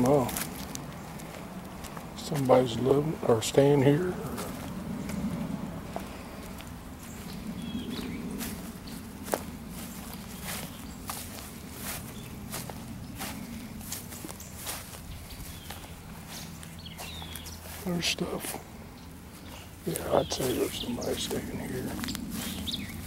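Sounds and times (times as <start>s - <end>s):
footsteps on sandy ground: 0.0s - 23.0s
low electric hum: 0.0s - 23.0s.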